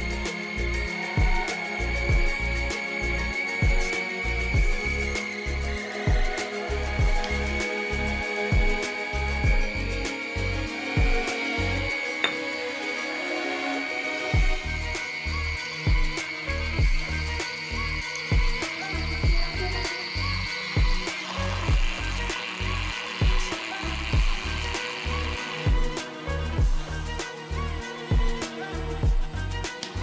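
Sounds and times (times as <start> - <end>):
background music with bass beat: 0.0 - 30.0
small motor whirring: 0.0 - 30.0.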